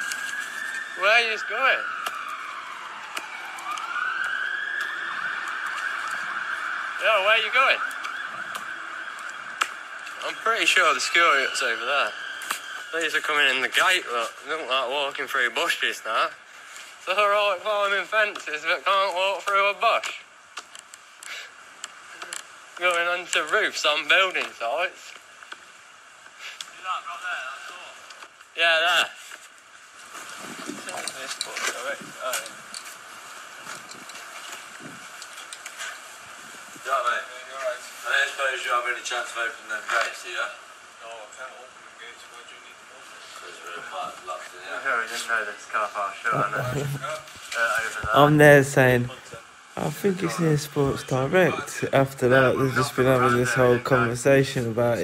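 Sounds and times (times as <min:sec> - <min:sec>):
steady background hiss: 0:08.8 - 0:55.0
distant people talking: 0:46.3 - 0:55.0.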